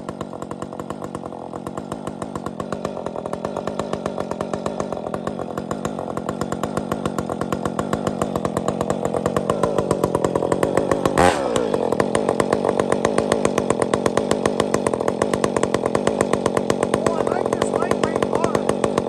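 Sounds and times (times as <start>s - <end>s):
chainsaw engine burst: 0.0s - 19.0s
chainsaw idling: 0.0s - 19.0s.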